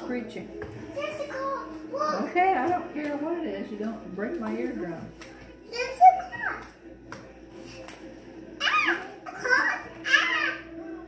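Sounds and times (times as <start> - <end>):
young child's high-pitched voice: 5.7 - 6.7.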